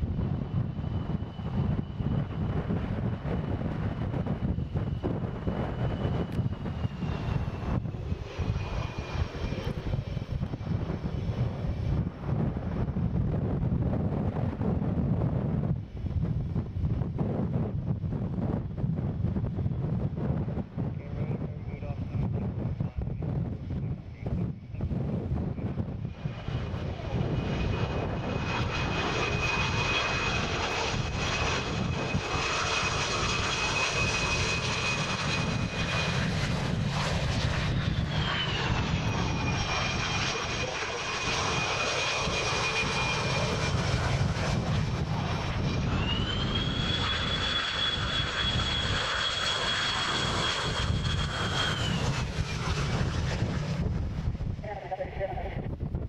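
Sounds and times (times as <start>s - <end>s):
jet engines whining and rumbling: 0.0s - 56.0s
wind buffeting microphone: 0.0s - 56.0s.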